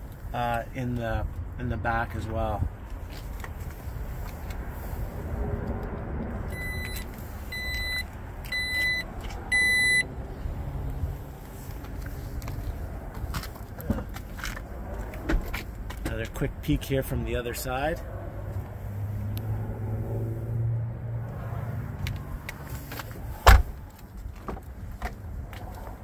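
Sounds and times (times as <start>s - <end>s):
high warning beeps: 6.5s - 10.1s.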